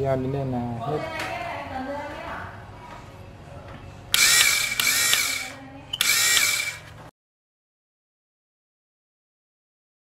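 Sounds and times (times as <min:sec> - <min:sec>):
electric motor whining: 0:04.2 - 0:07.0.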